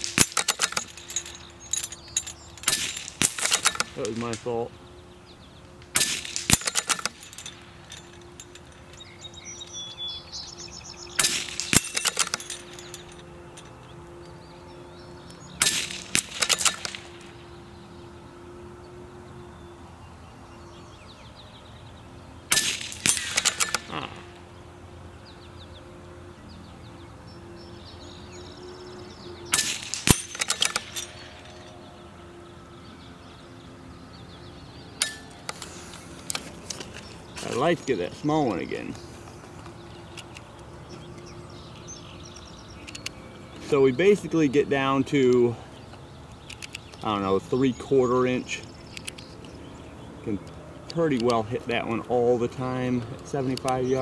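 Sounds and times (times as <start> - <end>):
rifle shots: 2.6 - 4.5, 5.9 - 7.6, 15.6 - 17.3, 22.5 - 24.0
rifle bolt clicks: 46.4 - 47.0, 48.9 - 49.6.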